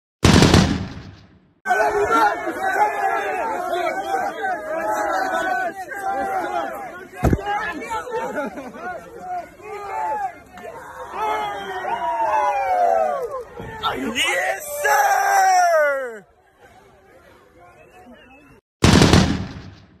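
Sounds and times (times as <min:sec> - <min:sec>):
burst of rapid cracks: 0:00.2 - 0:01.4, 0:18.8 - 0:20.0
crowd chatter: 0:01.7 - 0:14.9, 0:15.7 - 0:18.6.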